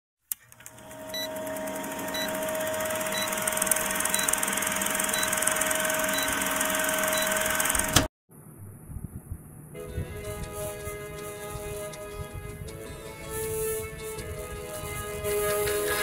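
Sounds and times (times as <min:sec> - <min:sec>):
film projector whirring: 0:00.3 - 0:08.1
short high beeps: 0:03.1 - 0:03.4, 0:04.1 - 0:04.4
film hiss and crackle: 0:09.8 - 0:16.0.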